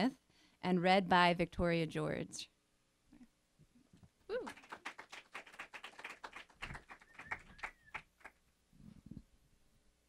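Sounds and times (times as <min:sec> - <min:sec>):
audience applause: 0:04.4 - 0:08.3.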